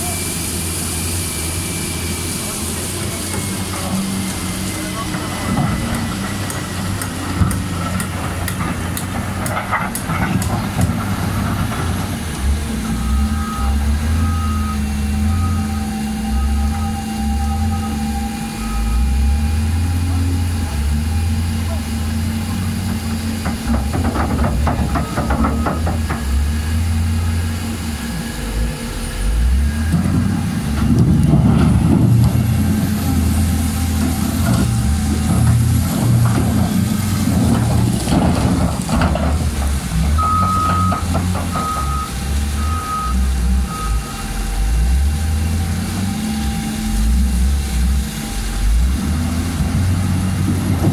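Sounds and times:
diesel engine under load: 0:00.0 - 0:50.9
backup alarm beeping: 0:40.2 - 0:44.2.

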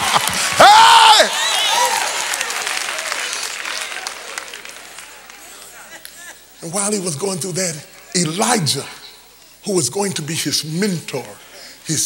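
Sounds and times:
congregation applauding: 0:00.0 - 0:06.2.

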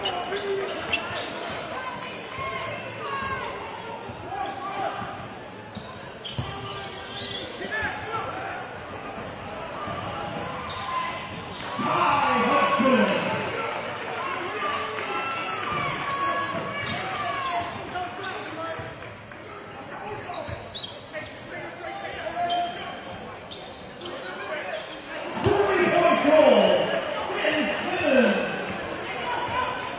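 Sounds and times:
players and spectators talking: 0:00.0 - 0:29.9.

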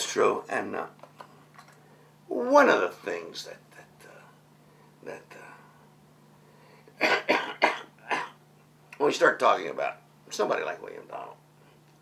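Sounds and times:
elderly man coughing: 0:07.0 - 0:08.4.

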